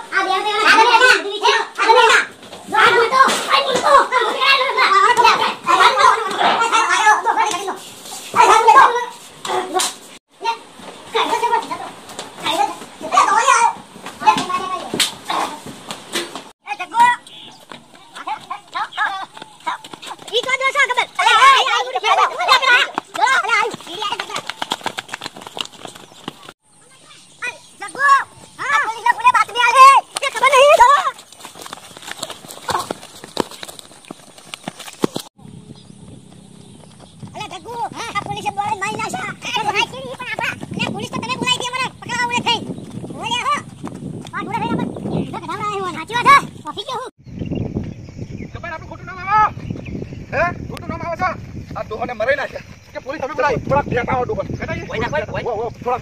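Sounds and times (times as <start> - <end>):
men shouting while running: 0.0 - 7.8, 8.4 - 9.8, 11.1 - 15.7, 16.7 - 26.5, 27.8 - 33.6, 37.2 - 47.1.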